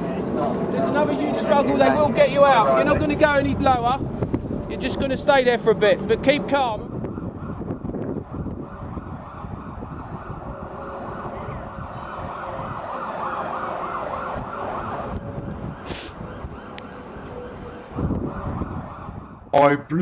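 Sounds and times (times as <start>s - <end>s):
outdoor background noise: 0.0s - 20.0s
emergency vehicle siren: 6.6s - 19.6s
short hiss: 15.9s - 16.2s.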